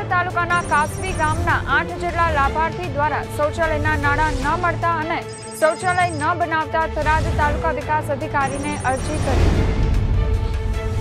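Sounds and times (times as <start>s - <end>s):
background music bed: 0.0s - 11.0s
high ringing tone: 0.5s - 2.2s, 3.6s - 6.5s, 8.4s - 9.3s.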